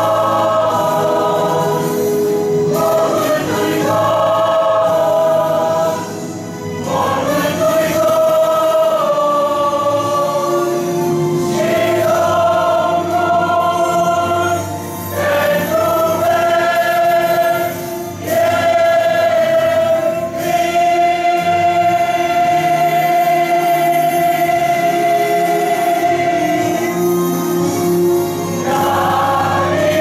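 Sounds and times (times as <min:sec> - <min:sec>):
choir singing a hymn: 0:00.0 - 0:30.0.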